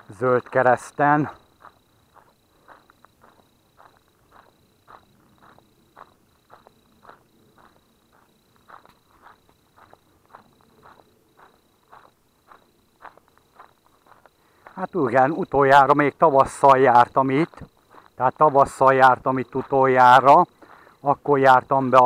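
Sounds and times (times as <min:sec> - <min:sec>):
footsteps on gravel: 0:00.0 - 0:20.8.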